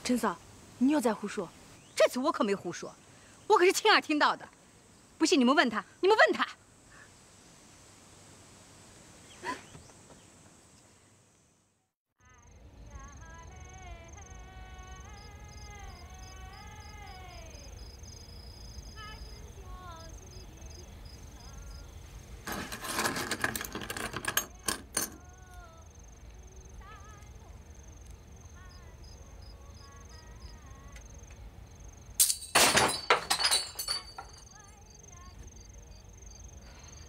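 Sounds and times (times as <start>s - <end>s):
crickets chirping: 0.0s - 11.6s, 12.2s - 37.0s
clattering: 22.4s - 25.2s, 32.2s - 34.5s
loud crash of breaking: 32.2s - 34.4s.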